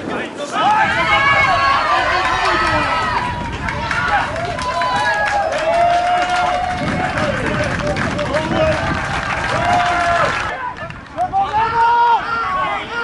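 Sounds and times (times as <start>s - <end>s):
spectators shouting and cheering: 0.0s - 13.0s.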